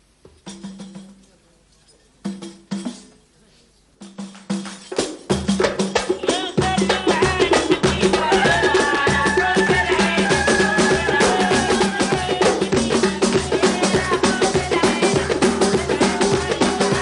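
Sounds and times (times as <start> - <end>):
hand drums playing: 0.3 - 1.2, 2.2 - 3.1, 4.0 - 17.0
women singing: 6.0 - 17.0.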